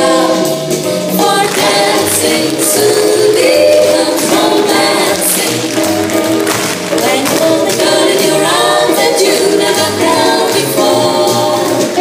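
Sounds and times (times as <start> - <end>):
person singing: 6.9 - 12.0.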